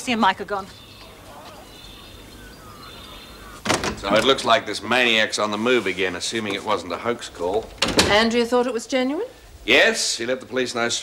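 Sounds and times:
faint high bird chirps: 0.6s - 3.7s
loud door opening: 3.4s - 4.5s, 7.5s - 8.3s.

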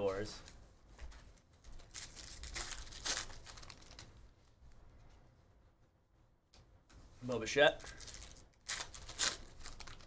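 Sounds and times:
cards rustling: 1.3s - 4.2s, 7.8s - 10.0s
wrapper crinkling: 1.7s - 4.3s, 7.8s - 10.0s.

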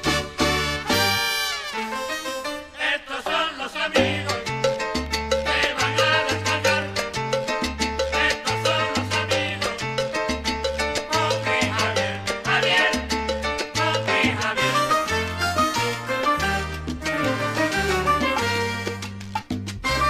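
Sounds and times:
bass line: 0.0s - 1.4s, 4.0s - 20.0s
horns: 0.0s - 2.9s, 14.4s - 20.0s
percussion: 0.0s - 20.0s
piano: 0.0s - 20.0s.

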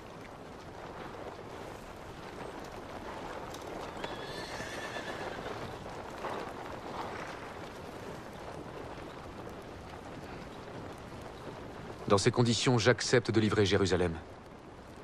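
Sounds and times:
wind: 0.0s - 15.0s
faint horse whinny: 3.9s - 5.8s.

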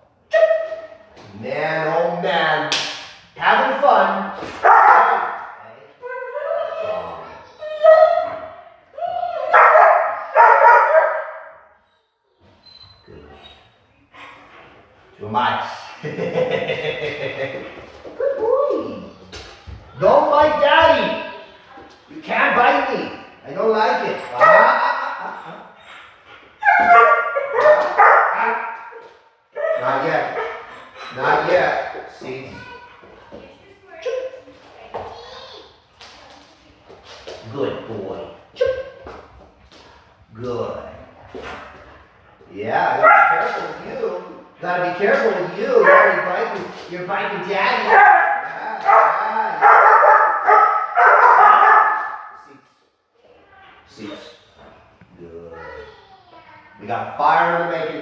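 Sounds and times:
dog howling high-pitched: 6.0s - 11.0s.

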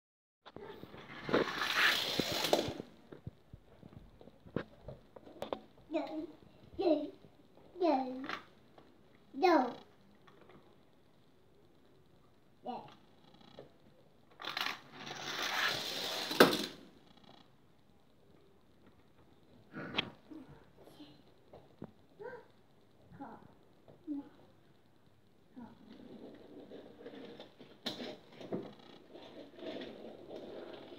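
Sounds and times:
rustling scraping noise: 0.5s - 7.0s, 14.5s - 16.8s, 25.8s - 30.9s
toy car rattling down plastic track: 1.0s - 2.9s, 14.4s - 16.9s, 26.0s - 30.9s
plastic toy track clicks: 14.4s - 16.8s.

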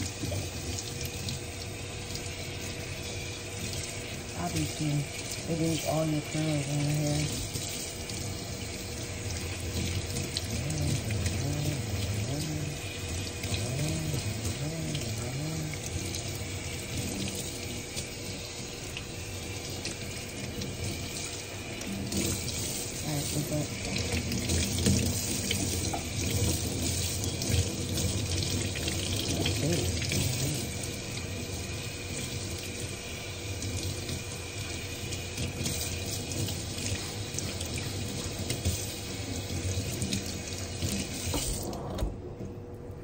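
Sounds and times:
water running from faucet sprayer: 0.0s - 42.1s.

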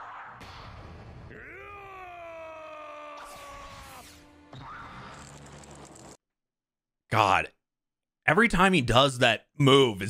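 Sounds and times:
man's long shout: 1.3s - 4.1s.

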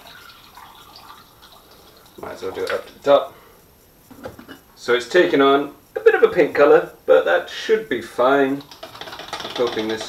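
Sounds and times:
liquid trickling through a funnel: 0.0s - 2.8s.

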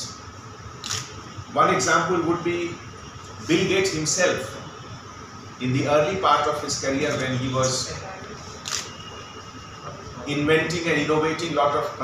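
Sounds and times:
low room noise: 0.0s - 12.0s
camera shutter click: 0.8s - 1.1s, 8.6s - 9.0s.

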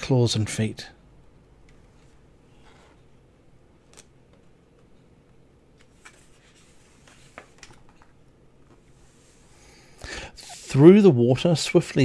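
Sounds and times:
faint room hum: 0.0s - 12.0s
paper page turning: 5.8s - 8.1s.

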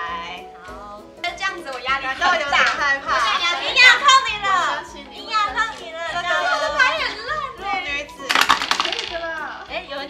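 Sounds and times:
quiet background music: 0.0s - 10.0s
women talking: 0.0s - 10.0s.

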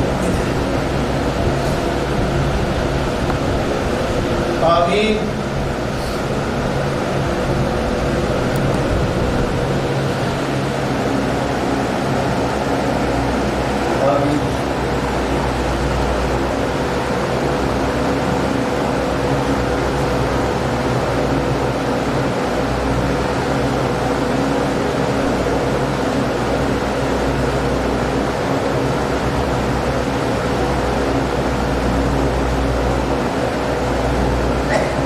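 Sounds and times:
low drone: 0.0s - 35.0s
machinery hum and hiss: 0.0s - 35.0s.

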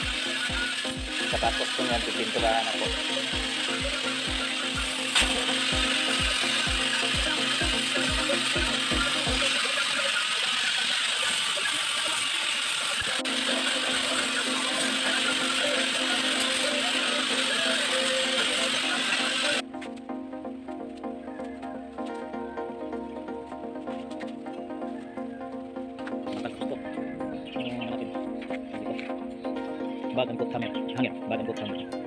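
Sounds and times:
angle grinder grinding steel: 0.0s - 19.6s.

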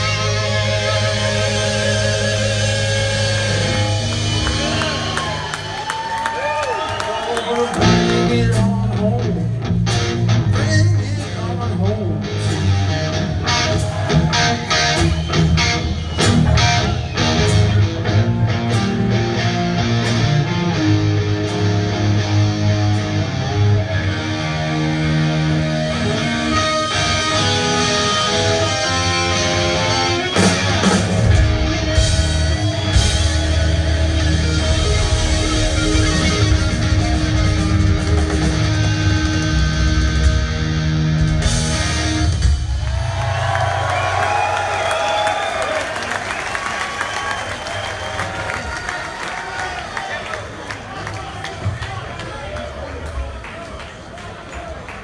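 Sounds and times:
live hard rock band: 0.0s - 6.2s, 6.9s - 44.5s
crowd cheering and whistling: 0.0s - 8.4s, 12.6s - 18.3s, 23.1s - 40.0s, 41.9s - 55.0s.

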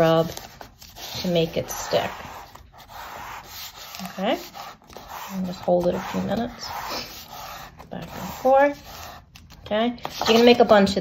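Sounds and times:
paper rubbing on tabletop: 0.0s - 9.3s.

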